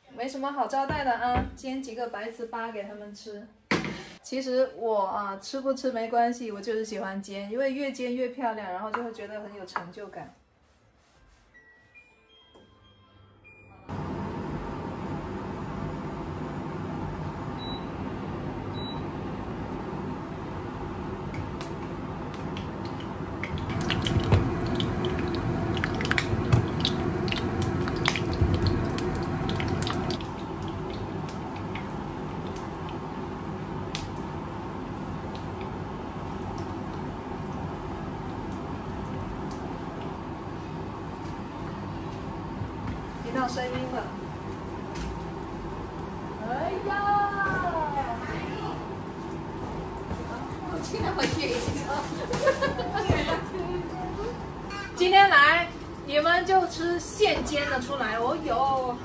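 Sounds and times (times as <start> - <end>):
induction cooktop running: 13.9 - 59.0
rice cakes frying in a pan: 20.8 - 41.6.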